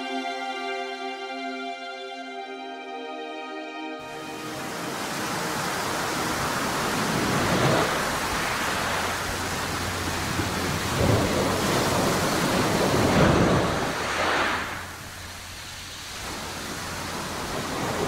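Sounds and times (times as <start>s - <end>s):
storm at sea rushing noise: 4.1s - 18.0s
heavy rumbling surges: 4.2s - 18.0s.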